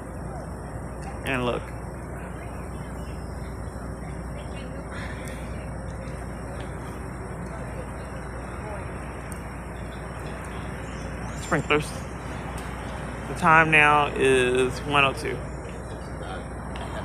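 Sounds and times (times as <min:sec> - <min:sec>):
vehicle engine rumbling: 0:00.0 - 0:17.0.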